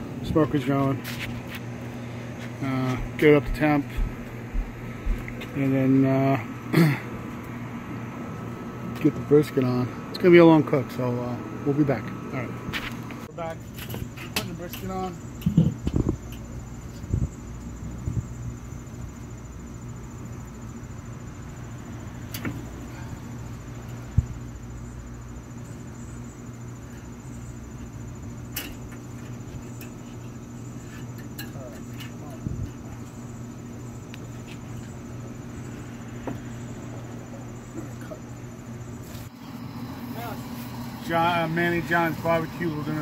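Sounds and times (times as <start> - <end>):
low mechanical hum: 0.0 - 43.0.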